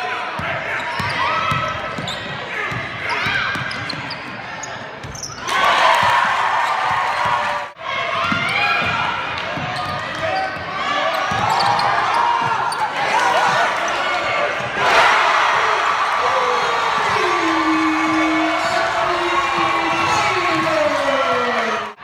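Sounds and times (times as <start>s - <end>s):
crowd noise: 0.0s - 22.0s
voices echoing in a hall: 0.0s - 22.0s.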